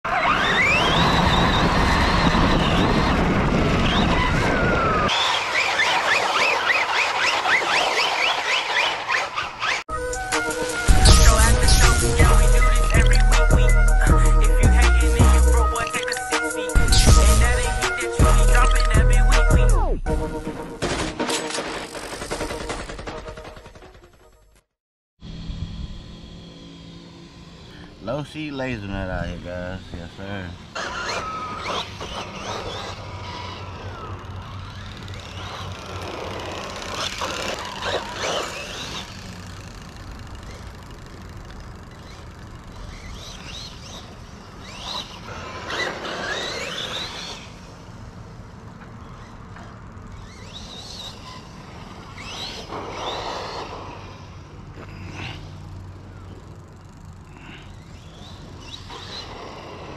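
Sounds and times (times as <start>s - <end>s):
tyre and wind noise: 0.1s - 7.2s
electric motor whine: 9.9s - 19.8s, 25.2s - 59.9s
music: 9.9s - 21.5s, 22.4s - 24.6s
rapid machine-gun-like rattle: 20.9s - 24.4s, 34.4s - 42.9s.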